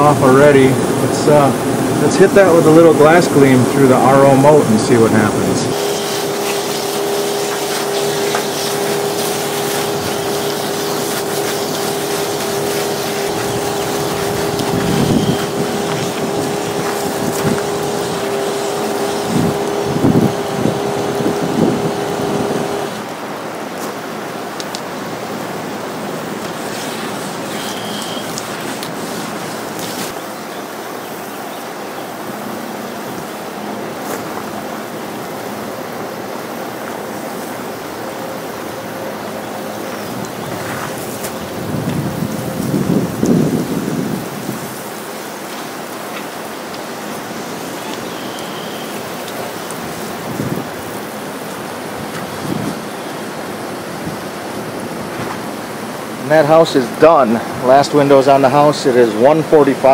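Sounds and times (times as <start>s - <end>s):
water spraying onto glass: 0.0s - 23.1s, 25.4s - 30.3s, 39.8s - 57.1s
small pump humming: 0.0s - 57.6s.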